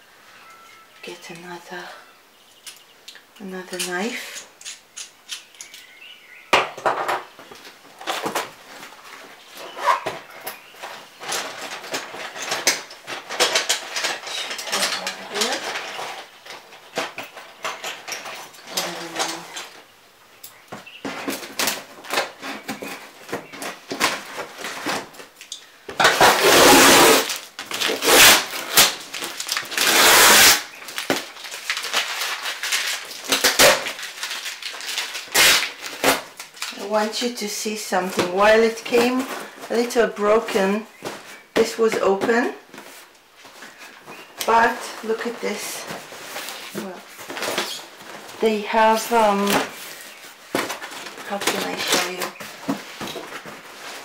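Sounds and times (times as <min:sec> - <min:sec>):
tape and cardboard ripping: 0:21.0 - 0:37.0.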